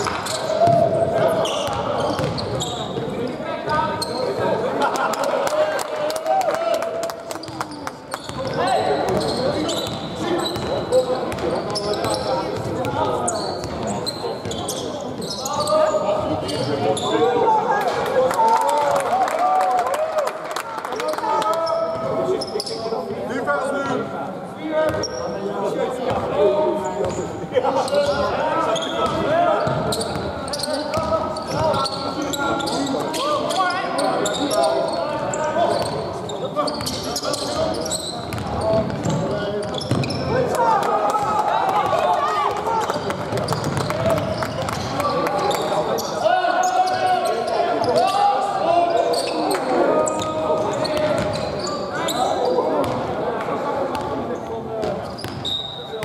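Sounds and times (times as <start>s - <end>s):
basketball bouncing on wooden court: 1.7s - 2.6s, 10.6s - 13.0s, 38.3s - 40.2s, 43.3s - 44.9s, 50.6s - 51.4s, 55.2s - 55.4s.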